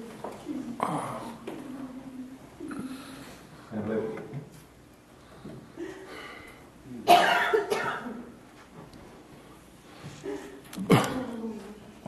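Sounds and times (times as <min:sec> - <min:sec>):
person coughing: 0:07.0 - 0:08.3, 0:10.3 - 0:11.5.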